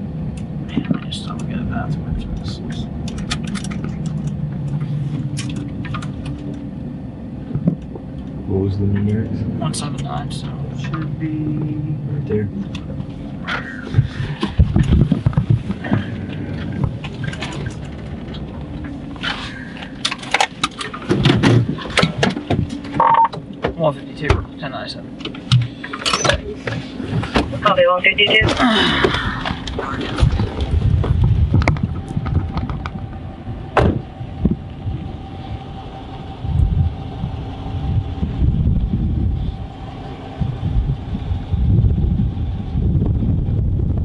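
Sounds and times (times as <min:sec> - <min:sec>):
car engine and road rumble: 0:00.0 - 0:44.0.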